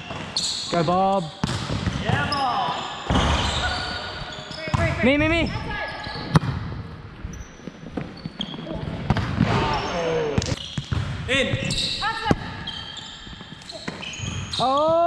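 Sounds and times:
sneakers squeaking on floor: 0.0s - 15.0s
players' voices: 0.7s - 6.5s, 7.8s - 12.8s.

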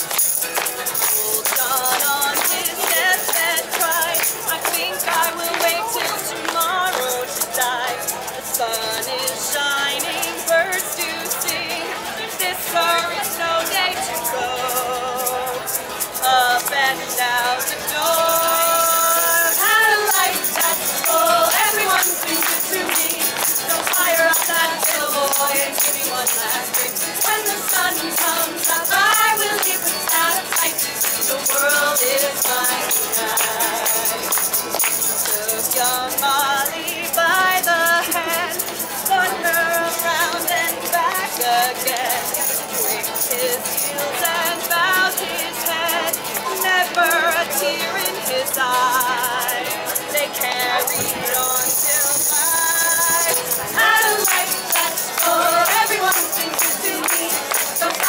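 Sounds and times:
hands clapping: 0.0s - 7.6s, 19.3s - 36.0s, 51.0s - 58.0s
strummed acoustic guitar: 0.0s - 58.0s
tambourine jingling: 0.0s - 58.0s
women singing: 0.0s - 58.0s.

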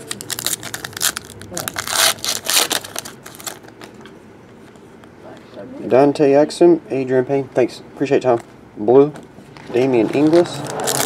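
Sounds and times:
foil wrapper tearing and crinkling: 0.0s - 3.8s, 10.6s - 11.0s.

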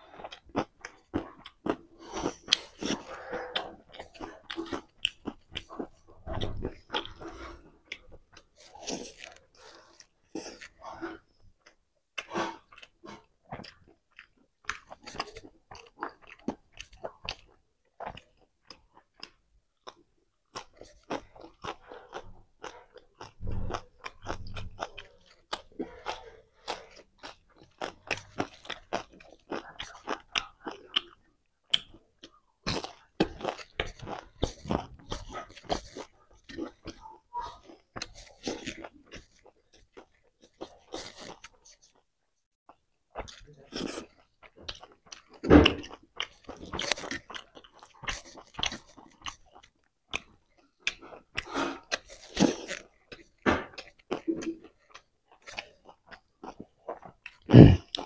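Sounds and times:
chewing and crunching: 0.0s - 58.0s.

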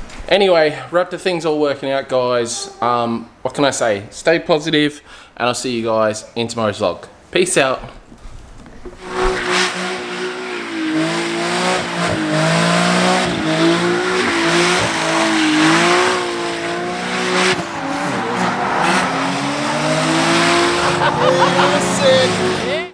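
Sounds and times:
car engine revving high: 9.0s - 22.9s.

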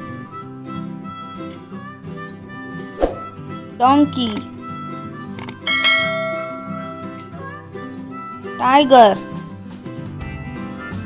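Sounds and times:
light background music: 0.0s - 11.0s
bright bell chime: 5.7s - 7.3s.

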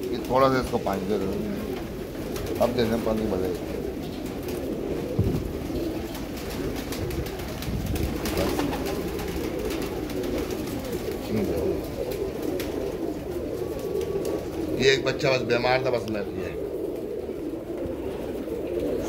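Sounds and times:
pigeons cooing: 0.0s - 19.0s.

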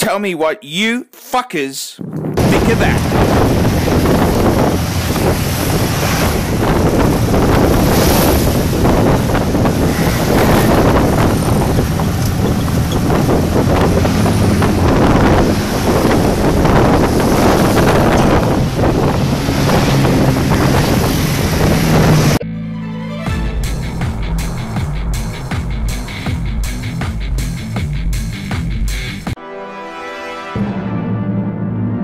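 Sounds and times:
wind buffeting microphone: 2.0s - 22.4s, 23.6s - 28.5s
engine drone: 2.0s - 29.4s
passing street traffic: 2.0s - 29.4s.

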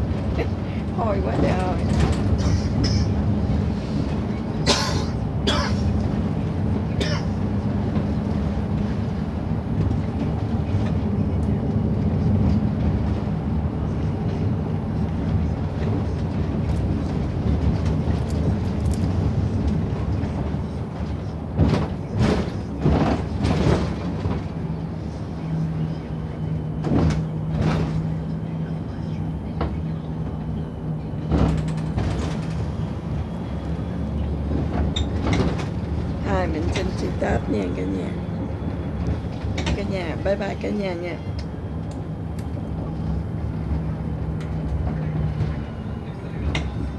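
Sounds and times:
coach engine drone: 0.0s - 46.9s
road noise: 0.0s - 46.9s.

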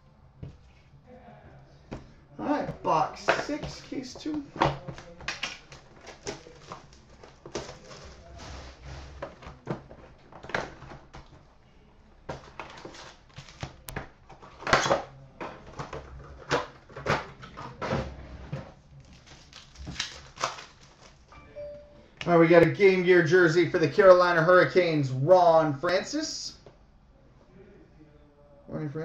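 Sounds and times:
cardboard and wrappers rustling: 1.9s - 11.5s, 12.2s - 21.3s
cardboard cracks: 4.6s - 8.3s, 19.0s - 21.2s.

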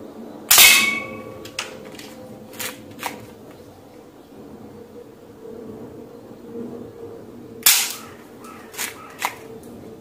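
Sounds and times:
air pistol firing snap: 7.6s - 8.1s
faint clicks: 8.4s - 9.8s.

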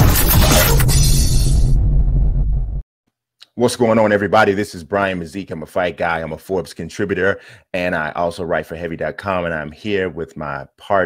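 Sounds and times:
crashing sound effect hit: 0.0s - 2.8s.

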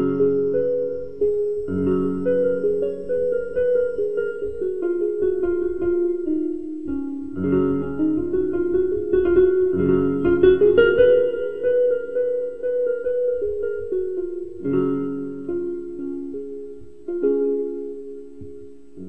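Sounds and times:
electronic keyboard melody and chords: 0.0s - 19.0s.

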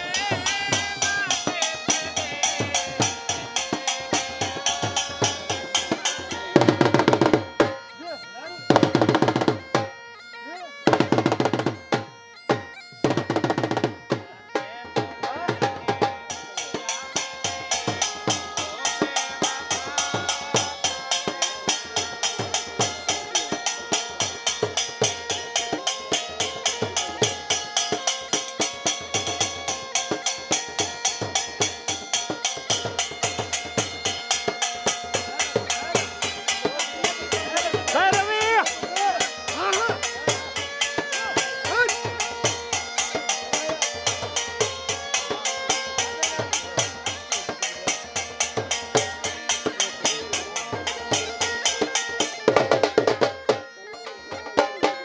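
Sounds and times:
bagpipe drone and melody: 0.0s - 55.0s
drum beaten in fast rhythm: 0.0s - 55.0s.

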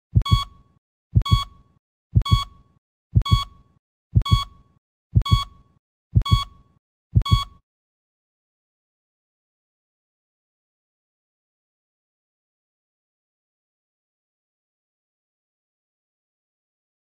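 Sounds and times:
heartbeat thumps: 0.1s - 0.5s, 1.1s - 1.5s, 2.1s - 2.5s, 3.1s - 3.5s, 4.1s - 4.5s, 5.1s - 5.5s, 6.1s - 6.5s, 7.1s - 7.5s
short high electronic beep: 7.2s - 7.6s.

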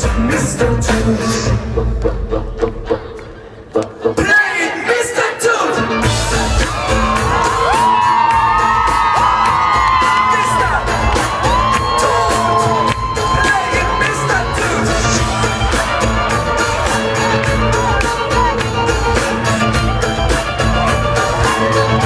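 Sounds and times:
live band playing through pa: 0.0s - 22.0s
heavy bass: 5.8s - 22.0s
steady drum beat: 5.9s - 22.0s
fans whooping and screaming: 6.0s - 22.0s.

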